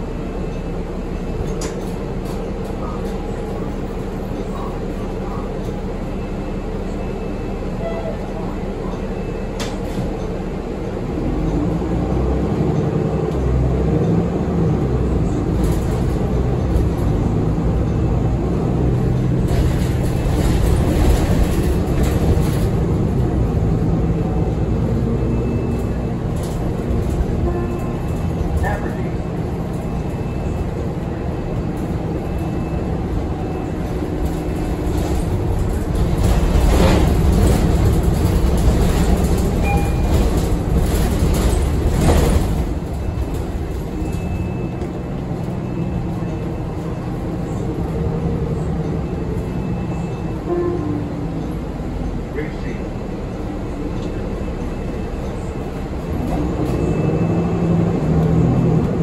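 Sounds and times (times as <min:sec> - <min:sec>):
bus engine and road rumble: 0:00.0 - 0:59.0
bus cabin rattles: 0:00.4 - 0:06.1, 0:07.6 - 0:59.0.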